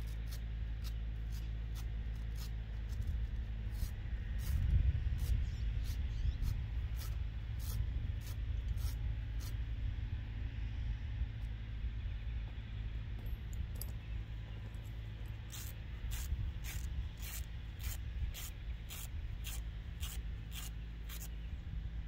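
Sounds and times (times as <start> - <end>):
wind buffeting microphone: 3.1 - 12.3, 15.4 - 20.2.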